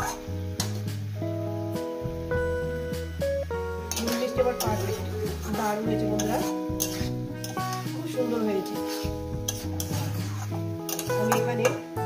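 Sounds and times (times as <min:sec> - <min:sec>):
metal spatula stirring vegetables: 0:00.0 - 0:01.2, 0:03.5 - 0:12.0
background music: 0:00.0 - 0:12.0
spatula scraping pan: 0:03.9 - 0:11.8.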